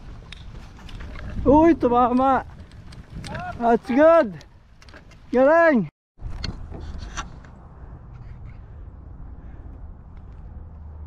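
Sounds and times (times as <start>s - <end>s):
wind rumbling on microphone: 0.0s - 5.4s, 6.2s - 11.0s.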